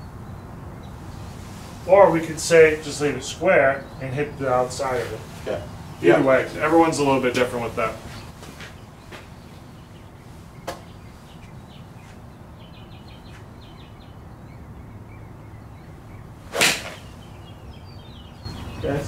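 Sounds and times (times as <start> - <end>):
golf club swish and strike: 16.5 - 17.2.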